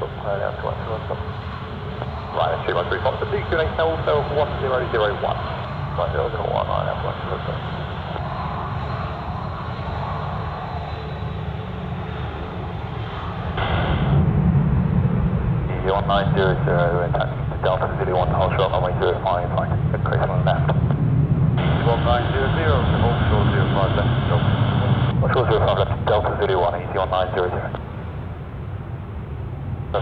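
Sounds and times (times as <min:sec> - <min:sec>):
jet engines low rumble: 0:00.0 - 0:30.0.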